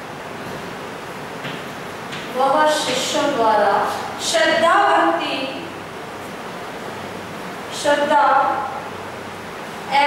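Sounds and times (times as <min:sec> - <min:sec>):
woman speaking: 0:02.3 - 0:05.8, 0:07.7 - 0:08.8.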